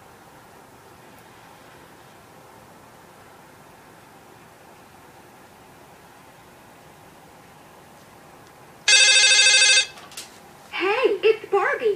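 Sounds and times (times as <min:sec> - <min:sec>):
toy telephone warbling ring: 0:08.9 - 0:10.0.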